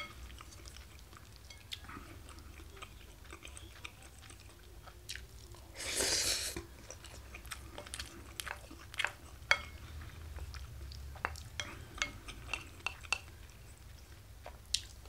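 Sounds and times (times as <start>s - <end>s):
person chewing: 0.1s - 15.0s
noisy mouth sound: 5.8s - 6.6s.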